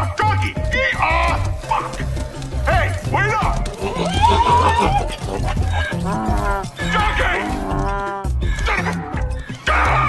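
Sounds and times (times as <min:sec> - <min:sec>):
donkey braying: 0:00.7 - 0:10.0.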